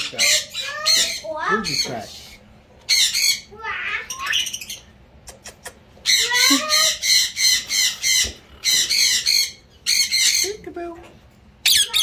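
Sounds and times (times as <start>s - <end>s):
parrot chattering: 0.0s - 2.2s, 2.9s - 10.8s, 11.6s - 12.0s
parrot squawking: 0.0s - 10.7s, 11.6s - 12.0s.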